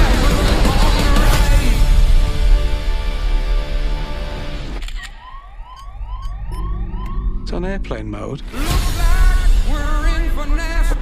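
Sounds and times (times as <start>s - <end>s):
dense trailer music: 0.0s - 11.0s
siren-like alarm tones: 5.0s - 8.2s.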